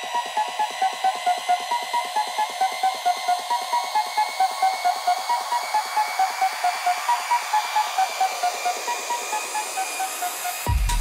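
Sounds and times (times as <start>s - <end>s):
rising synth sweep: 0.0s - 10.7s
pulsing synth: 0.0s - 11.0s.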